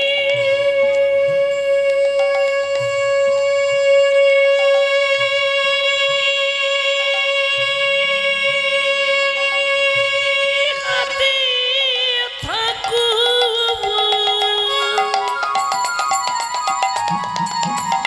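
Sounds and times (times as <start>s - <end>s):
man singing long note: 0.0s - 12.0s
instrumental accompaniment: 0.0s - 18.0s.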